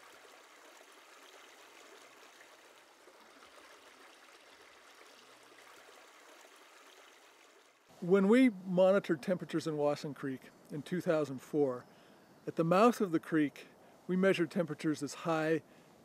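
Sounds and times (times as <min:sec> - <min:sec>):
small creek trickling: 0:00.0 - 0:08.0.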